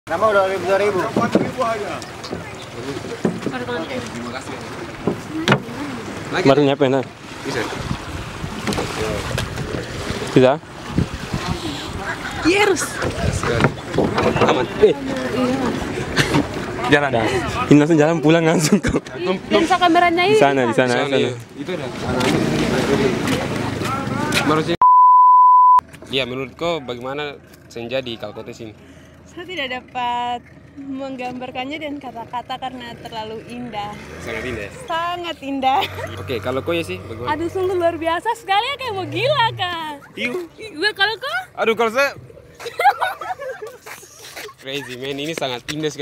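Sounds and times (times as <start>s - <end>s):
single-pitch bleep tone: 24.8s - 25.8s
people talking: 29.4s - 42.2s.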